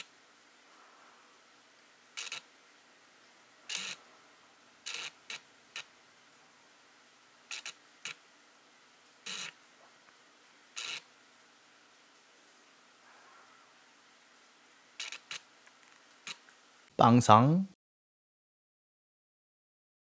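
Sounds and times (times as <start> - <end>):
faint steady hiss: 0.0 - 17.8
camera shutter clicking: 2.2 - 2.5, 3.7 - 4.0, 4.9 - 5.9, 7.5 - 8.2, 9.3 - 9.5, 10.8 - 11.0, 15.0 - 15.4.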